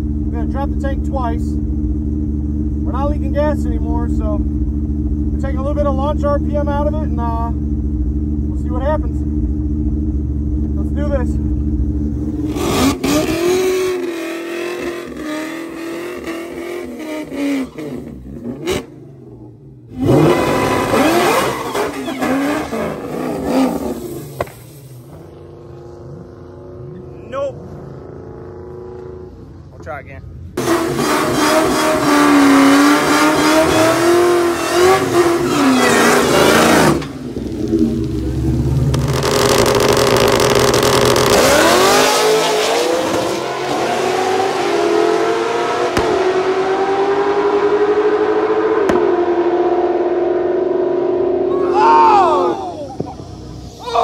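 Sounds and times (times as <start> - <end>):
car engine revving: 0.0 - 29.7, 30.4 - 54.0.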